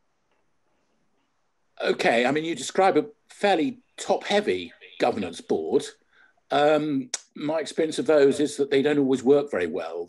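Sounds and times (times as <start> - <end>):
man speaking: 1.8 - 10.0.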